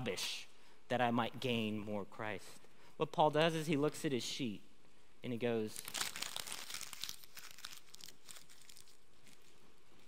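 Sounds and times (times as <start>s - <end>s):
paper crumpling: 5.8s - 9.6s.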